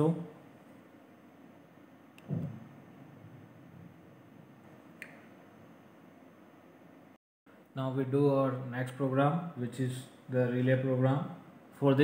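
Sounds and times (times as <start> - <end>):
soft low thump: 2.2 - 2.8.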